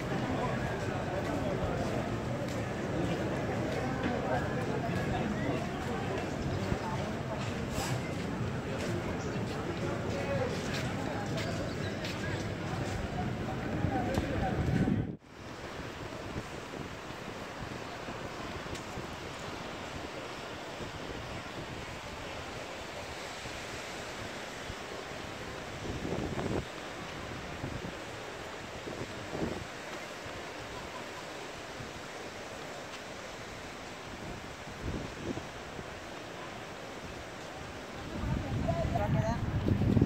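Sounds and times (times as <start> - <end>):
wind: 0.0 - 40.0.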